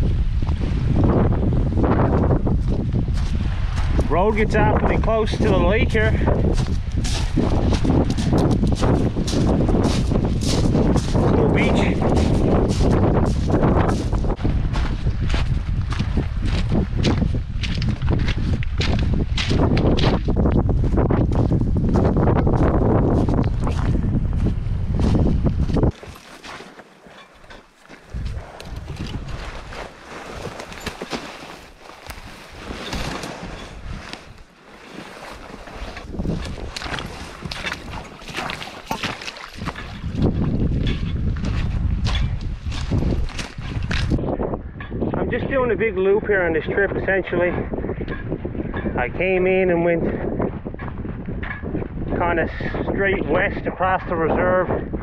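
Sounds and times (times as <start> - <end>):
wind buffeting microphone: 0.0 - 26.2, 27.4 - 55.0
footsteps through wet brush: 0.1 - 44.2
footsteps on pebbles: 2.0 - 44.2.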